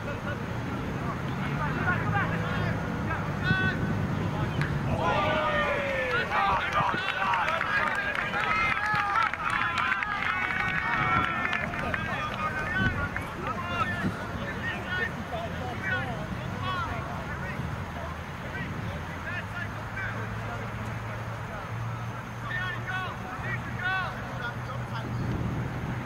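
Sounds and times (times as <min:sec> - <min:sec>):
people shouting and calling out: 0:01.4 - 0:20.6, 0:22.3 - 0:24.6.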